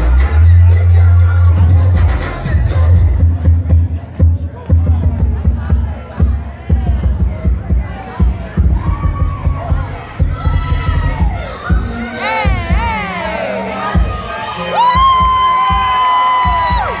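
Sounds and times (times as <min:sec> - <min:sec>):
loud dance music: 0:00.0 - 0:17.0
audience cheering and screaming: 0:08.6 - 0:17.0.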